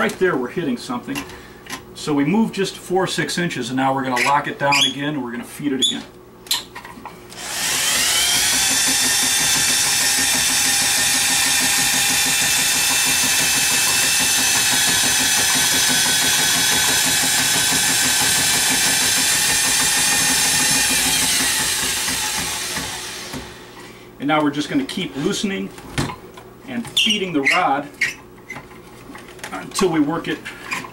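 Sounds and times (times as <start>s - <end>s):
electric drill motor whining: 7.3s - 23.8s.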